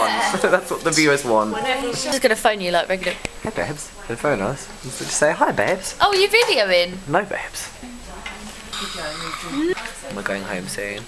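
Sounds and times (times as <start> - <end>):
steady hiss: 0.4 - 11.0.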